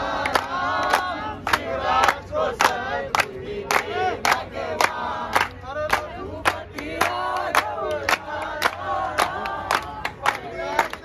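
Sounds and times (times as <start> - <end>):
group of voices chanting: 0.0 - 11.0
hand-clapping: 0.0 - 11.0.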